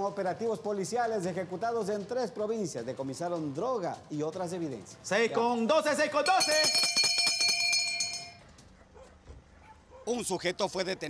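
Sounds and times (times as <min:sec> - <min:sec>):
hand bell ringing: 0:06.2 - 0:08.4.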